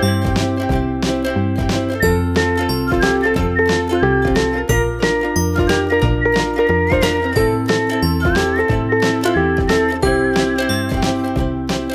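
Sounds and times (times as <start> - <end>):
upbeat background music: 0.0 - 11.9.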